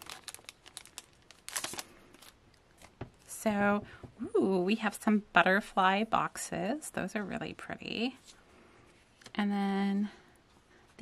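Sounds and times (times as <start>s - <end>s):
cellophane sleeve crinkling: 0.0s - 3.3s.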